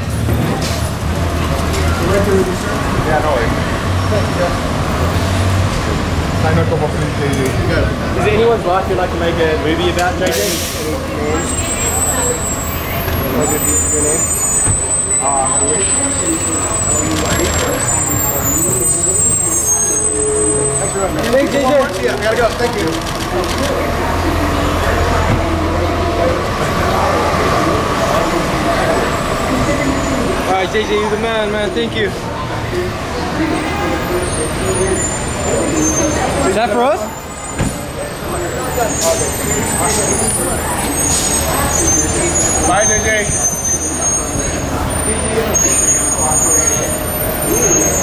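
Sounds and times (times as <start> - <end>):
buses and cars running: 0.0 - 48.0
faint voices: 0.0 - 48.0
idling vehicles rumbling: 0.0 - 48.0
people talking: 1.4 - 5.0, 5.7 - 48.0.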